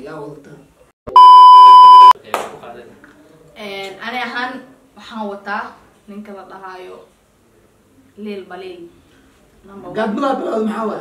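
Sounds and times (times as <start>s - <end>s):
test-tone beep: 1.1s - 2.2s.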